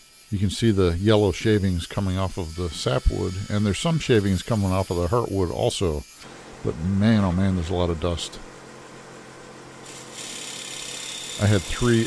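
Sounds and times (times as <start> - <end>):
wood lathe humming: 0.0 - 6.3, 9.8 - 12.0
gouge cutting wood hiss: 0.0 - 6.4, 9.8 - 12.0.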